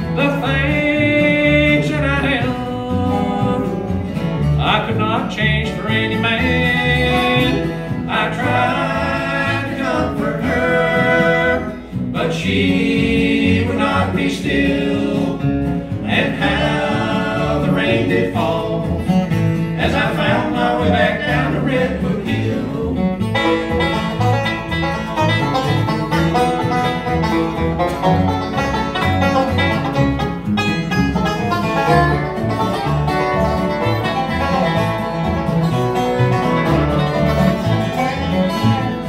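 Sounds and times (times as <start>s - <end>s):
acoustic guitar: 0.0s - 39.0s
banjo picking fast rolls: 0.0s - 39.0s
mandolin: 0.0s - 39.0s
upright bass: 0.0s - 39.0s.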